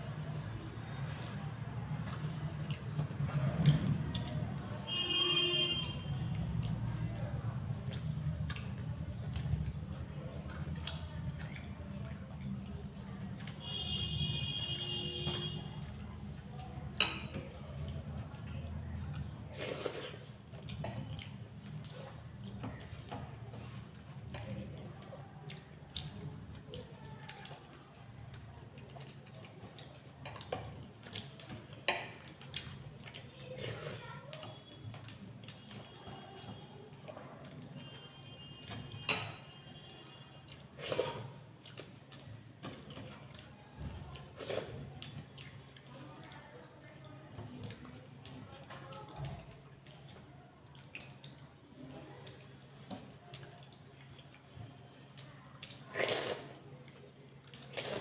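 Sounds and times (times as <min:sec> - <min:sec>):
chewing and mouth smacks: 0:02.0 - 0:04.6, 0:05.8 - 0:13.8, 0:15.3 - 0:58.0.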